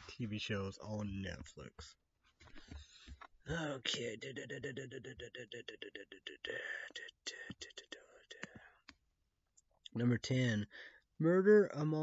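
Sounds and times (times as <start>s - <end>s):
man whispering: 3.5s - 8.9s.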